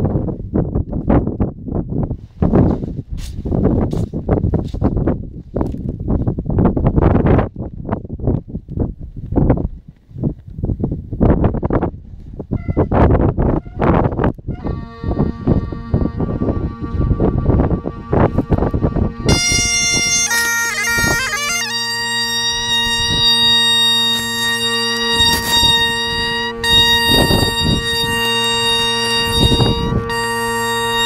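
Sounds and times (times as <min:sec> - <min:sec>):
wind buffeting microphone: 0:00.0 - 0:31.0
bagpipe chanter melody: 0:14.5 - 0:31.0
bagpipe drones: 0:14.5 - 0:31.0.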